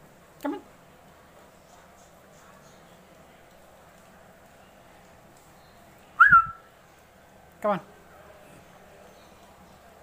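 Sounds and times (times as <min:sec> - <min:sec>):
short rising whistle: 0:06.2 - 0:06.6.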